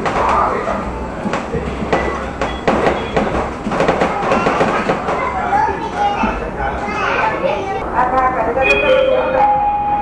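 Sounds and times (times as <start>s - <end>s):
tram rumbling: 0.0s - 10.0s.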